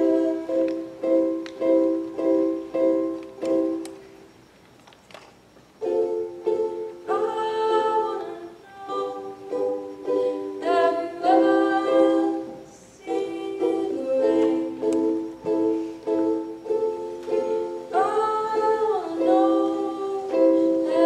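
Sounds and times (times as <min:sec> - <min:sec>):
young woman singing: 0:00.0 - 0:01.4, 0:06.6 - 0:15.6, 0:17.0 - 0:21.0
ukulele strumming: 0:00.0 - 0:04.1, 0:05.8 - 0:21.0.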